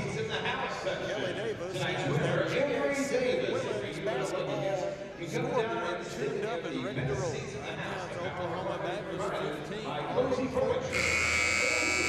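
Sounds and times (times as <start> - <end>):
voices in gym: 0.0 - 12.0
scoreboard horn blast: 10.9 - 12.0.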